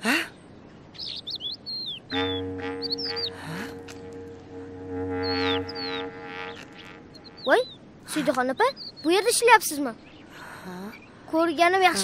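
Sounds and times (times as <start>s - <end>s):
small birds chirping: 0.6s - 12.0s
held chord of background music: 2.1s - 6.8s.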